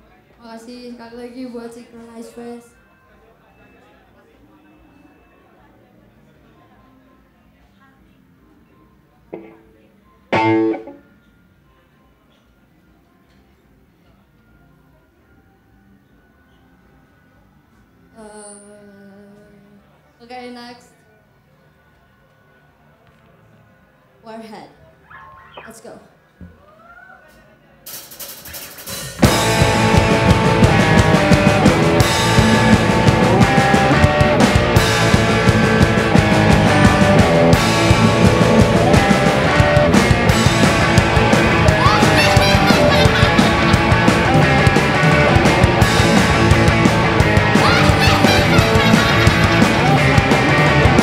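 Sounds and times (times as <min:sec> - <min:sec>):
electric guitar chords: 0:10.3 - 0:11.1, 0:29.2 - 0:51.0
loud punk band playing: 0:10.4 - 0:11.0, 0:27.9 - 0:51.0.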